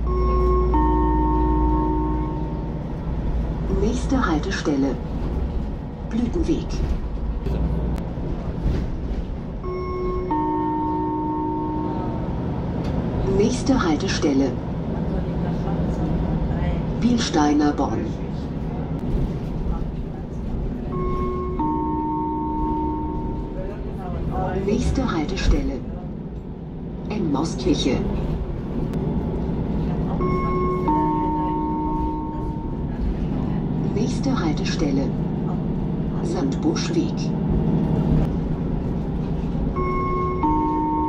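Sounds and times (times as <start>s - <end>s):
steady low rumble: 1.4s - 10.3s, 22.4s - 41.0s.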